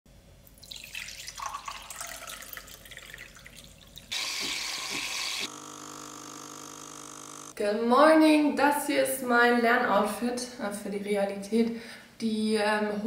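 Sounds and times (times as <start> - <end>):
water pouring into a glass: 0.5 - 5.4
coffee running into a glass: 0.6 - 5.5
espresso machine pump humming: 4.1 - 7.6.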